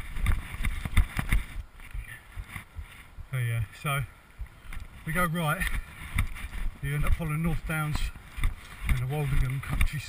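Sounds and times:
camera mount rubbing and jolting: 0:00.0 - 0:03.2, 0:05.6 - 0:07.2
footfalls on muddy trail: 0:05.0 - 0:10.0.

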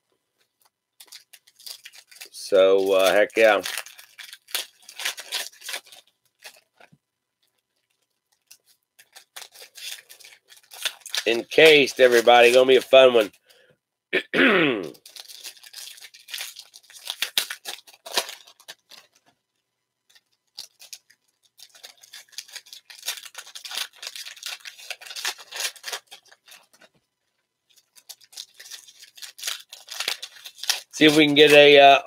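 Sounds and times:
foil wrapper crinkling and tearing: 0:00.5 - 0:13.6, 0:14.8 - 0:32.0.

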